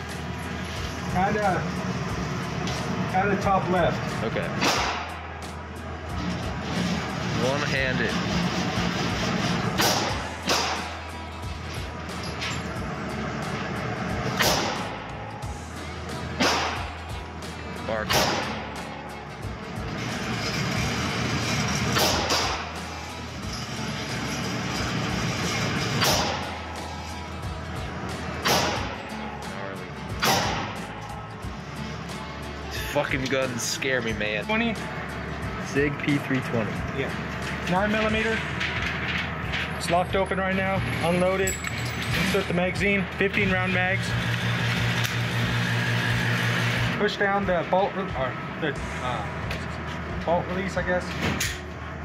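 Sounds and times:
steady low hum: 0:00.0 - 0:41.4
revolver shots echoing indoors: 0:04.6 - 0:05.6, 0:08.6 - 0:11.2, 0:12.3 - 0:15.2, 0:16.2 - 0:17.1, 0:18.0 - 0:19.1, 0:21.0 - 0:22.9, 0:25.4 - 0:27.1, 0:27.9 - 0:29.4, 0:30.1 - 0:31.0.

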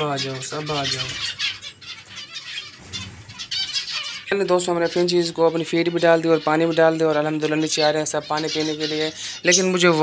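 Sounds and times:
finches chirping: 0:00.0 - 0:10.0.

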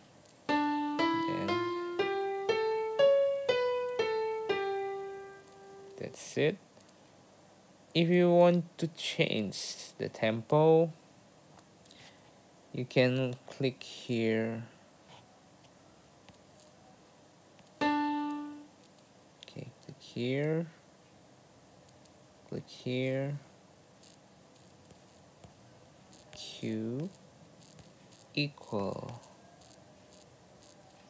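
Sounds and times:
piano melody: 0:00.5 - 0:06.0, 0:17.8 - 0:18.7.

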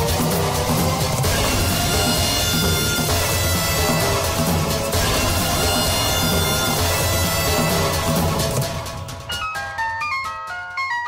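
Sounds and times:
dramatic background score: 0:00.0 - 0:09.3.

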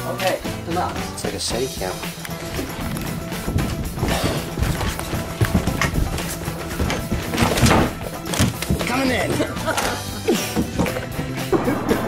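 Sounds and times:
music playing: 0:00.0 - 0:12.0
footsteps thumping down stairs: 0:02.3 - 0:11.2.

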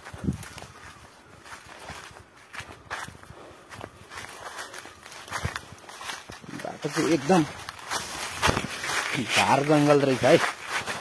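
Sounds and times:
footsteps on dry leaves: 0:00.0 - 0:11.0
twigs and leaves rustling: 0:00.0 - 0:11.0.

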